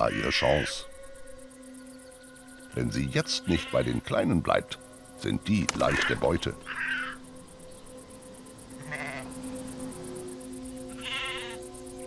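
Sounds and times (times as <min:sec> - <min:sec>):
sheep bleating: 0:08.8 - 0:09.3, 0:10.9 - 0:11.6.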